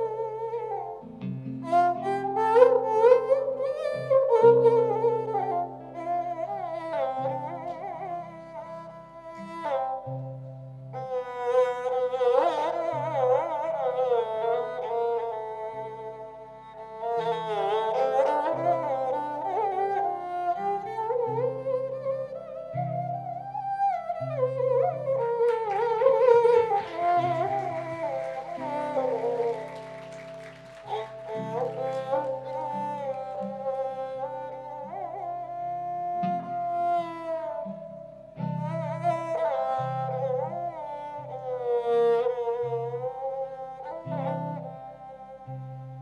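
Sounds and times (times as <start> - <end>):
sarangi ornamented melody: 0.0 - 46.0.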